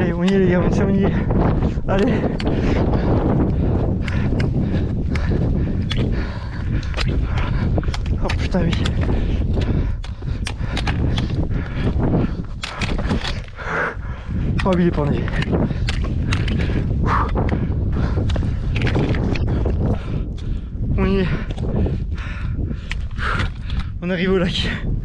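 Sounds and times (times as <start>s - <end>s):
trekking pole tips clicking on rock: 0.0s - 20.6s
steady low rumble: 0.0s - 25.0s.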